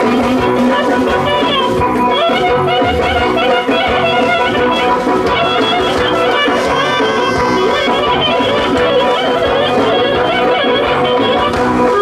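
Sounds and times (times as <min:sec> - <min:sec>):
drum beat: 0:00.0 - 0:12.0
wind instrument melody: 0:00.0 - 0:12.0.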